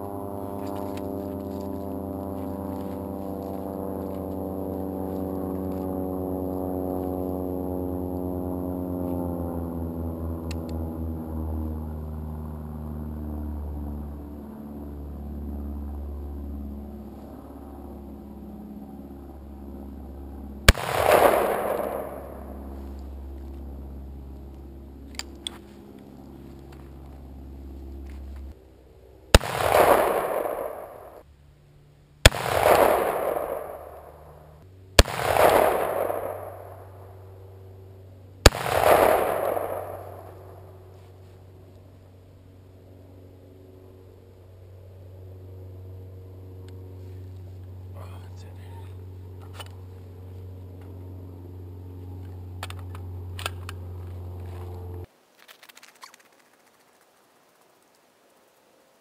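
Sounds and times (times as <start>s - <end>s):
steady low hum: 0.0s - 55.3s
rifle shots with echo: 20.7s - 22.7s, 29.3s - 31.2s, 32.2s - 37.2s, 38.4s - 40.7s.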